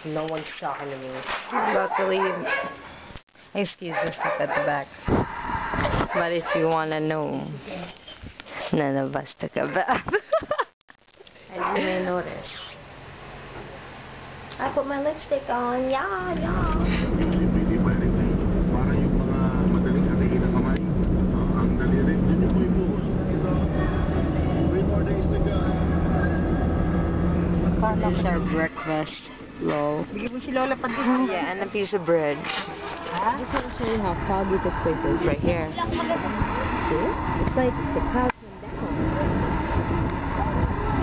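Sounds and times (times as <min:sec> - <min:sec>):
car engine and road noise: 0:04.2 - 0:06.2, 0:12.9 - 0:41.0
wind rumble on microphone: 0:05.0 - 0:06.2, 0:16.2 - 0:29.0, 0:33.4 - 0:41.0
faint voices: 0:16.2 - 0:41.0.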